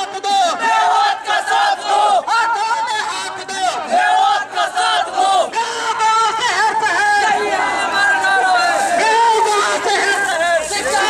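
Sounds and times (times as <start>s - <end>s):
crowd of men shouting slogans: 0.0s - 11.0s.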